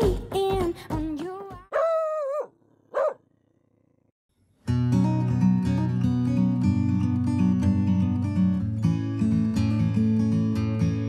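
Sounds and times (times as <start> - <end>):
dog howling: 1.7 - 3.2
dog barking: 1.7 - 3.3.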